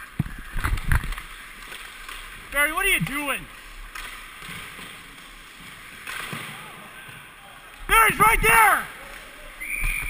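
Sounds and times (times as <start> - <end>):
skate blades scraping on ice: 0.3 - 7.3.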